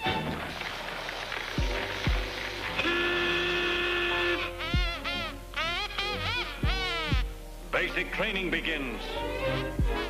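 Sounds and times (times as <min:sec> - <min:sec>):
whistle-like tone: 0:02.8 - 0:07.2.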